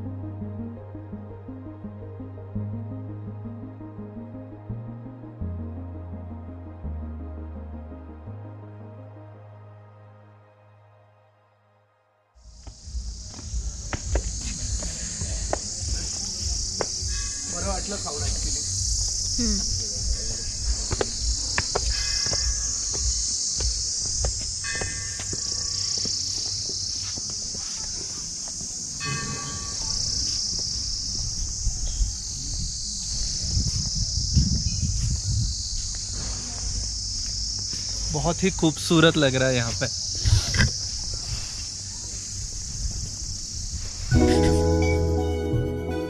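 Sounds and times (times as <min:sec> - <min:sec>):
high-pitched hiss: 0:12.4 - 0:46.0
insect chorus: 0:12.4 - 0:46.0
footsteps on stone steps: 0:12.5 - 0:31.6, 0:32.5 - 0:38.1.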